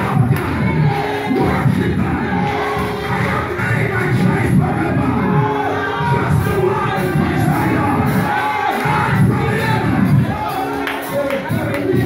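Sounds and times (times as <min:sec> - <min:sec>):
congregation singing worship music: 0:00.0 - 0:12.0.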